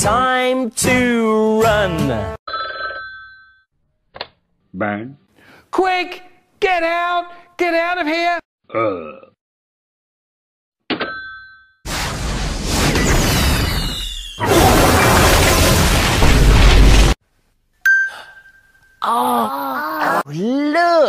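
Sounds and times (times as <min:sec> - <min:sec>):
explosion blast with deep rumble: 0:11.9 - 0:17.2
short ding: 0:17.8 - 0:19.0.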